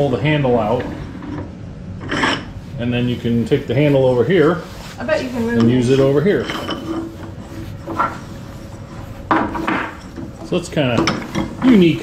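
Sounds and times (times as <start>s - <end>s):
wooden vise handle sliding: 5.4s - 12.0s.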